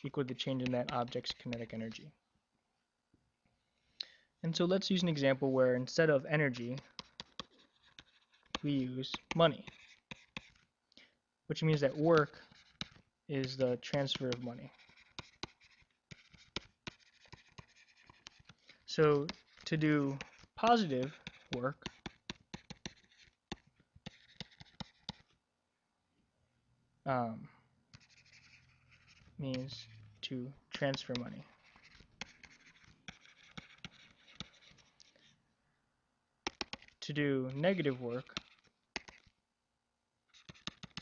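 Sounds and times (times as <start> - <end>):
stylus tapping and scratching: 0.2 - 2.1, 6.3 - 10.7, 11.6 - 25.4, 27.9 - 35.4, 36.4 - 39.4, 40.3 - 41.0
stylus tapping on tablet: 21.2 - 25.3, 36.4 - 37.0, 40.4 - 41.0.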